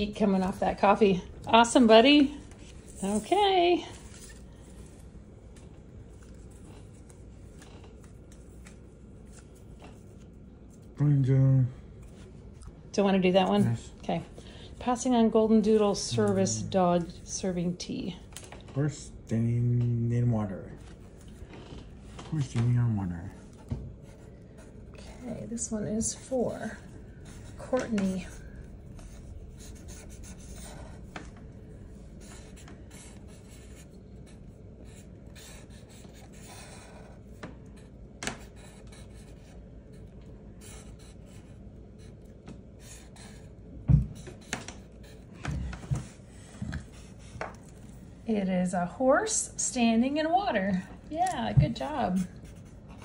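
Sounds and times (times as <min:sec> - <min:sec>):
marker scratching on paper: 0:23.5 - 0:31.4, 0:32.2 - 0:42.2, 0:42.8 - 0:48.0, 0:51.7 - 0:53.0.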